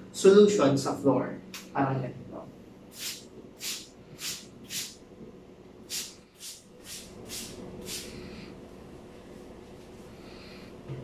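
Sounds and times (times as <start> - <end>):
spray bottle squirting: 2.9 - 4.9, 5.9 - 8.1.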